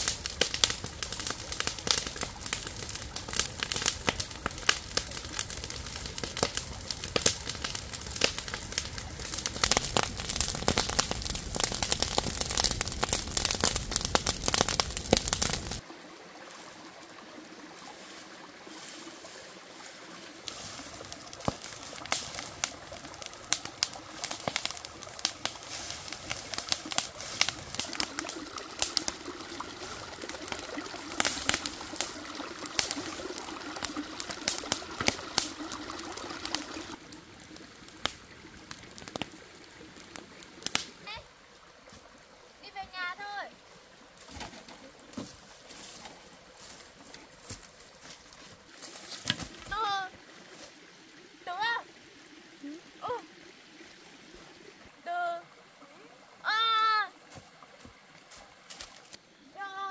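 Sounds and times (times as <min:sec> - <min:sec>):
fire crackling and popping: 0:00.0 - 0:15.8, 0:20.3 - 0:43.1, 0:44.2 - 0:50.4.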